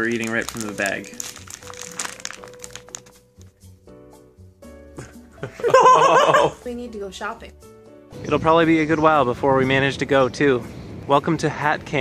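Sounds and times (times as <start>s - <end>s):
plastic bag crinkling: 0.0s - 3.5s
background music: 0.0s - 12.0s.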